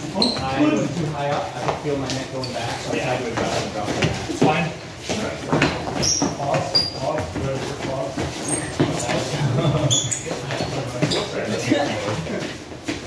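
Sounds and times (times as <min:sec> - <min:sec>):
people talking at once: 0:08.9 - 0:12.6.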